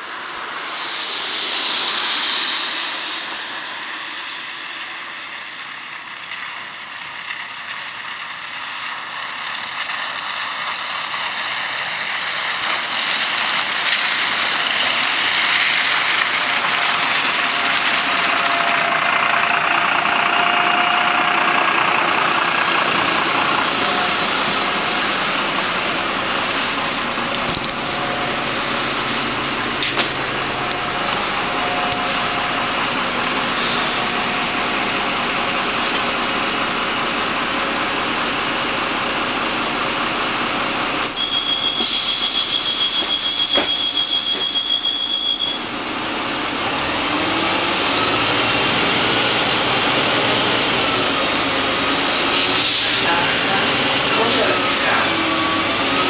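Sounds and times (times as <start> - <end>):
bus engine and road noise: 0.0 - 56.0
two-tone electronic signal: 41.1 - 45.7.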